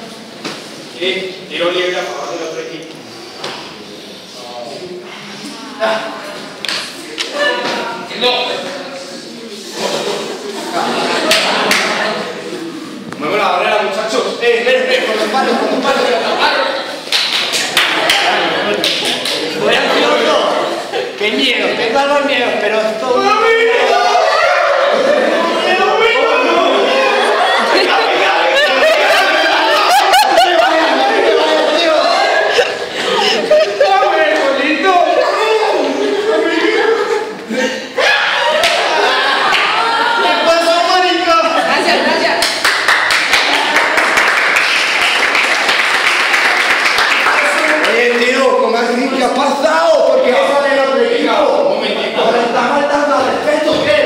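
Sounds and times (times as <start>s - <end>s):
low indistinct voices: 0.0s - 42.6s
people talking: 1.0s - 42.6s, 47.2s - 54.0s
people laughing: 9.5s - 13.0s, 15.0s - 21.6s, 23.5s - 42.4s.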